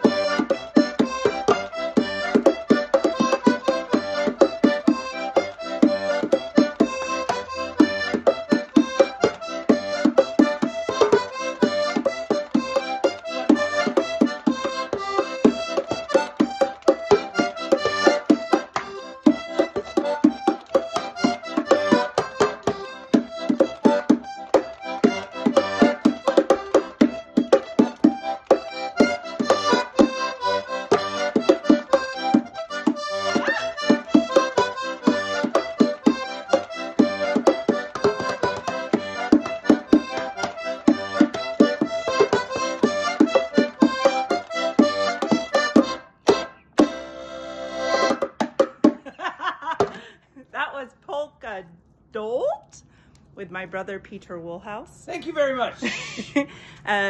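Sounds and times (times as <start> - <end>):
hand strikes on box drum: 0.0 - 47.0, 47.9 - 49.0
button accordion polka: 0.0 - 50.1.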